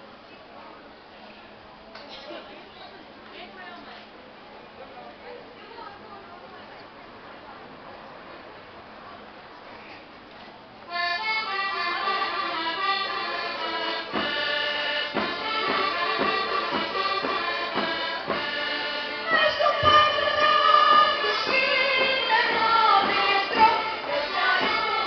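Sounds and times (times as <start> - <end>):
accordion folk dance music: 10.9 - 25.0.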